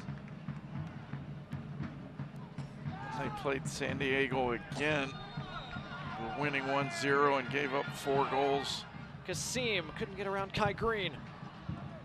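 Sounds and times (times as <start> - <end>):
steady low drumbeat: 0.0 - 8.1
crowd noise: 2.1 - 12.0.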